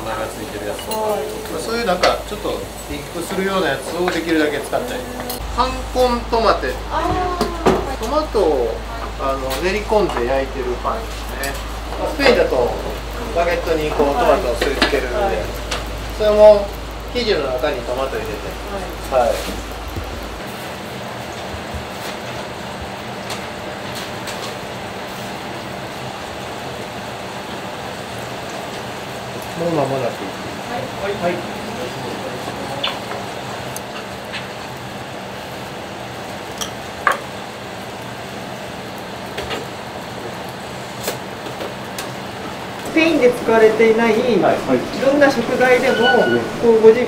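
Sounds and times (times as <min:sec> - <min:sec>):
room hum: 0:00.0 - 0:34.0, 0:37.6 - 0:47.0
kitchen background noise: 0:00.0 - 0:38.0, 0:38.6 - 0:47.0.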